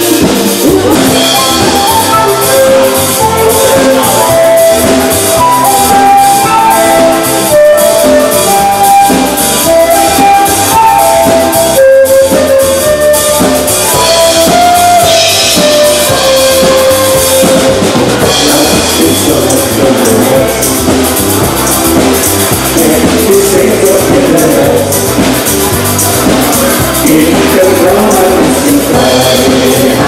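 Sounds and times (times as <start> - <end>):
flute melody of held notes: 0.0 - 20.3
band playing schlager music: 0.0 - 30.0
drum kit beat: 0.0 - 30.0.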